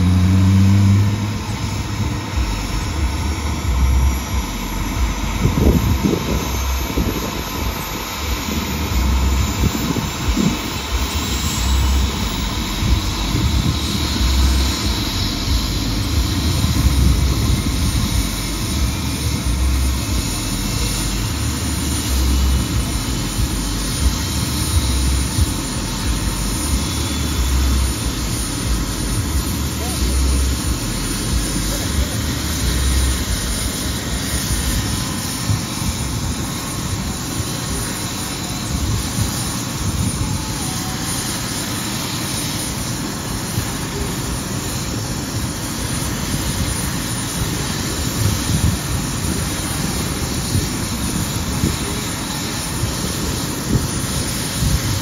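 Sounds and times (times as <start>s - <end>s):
helicopter engine roar: 0.0s - 55.0s
high turbine whine: 0.0s - 55.0s.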